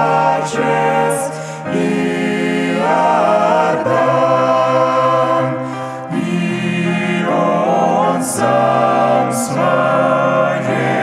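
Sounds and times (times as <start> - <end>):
choir singing a hymn in harmony: 0.0 - 11.0.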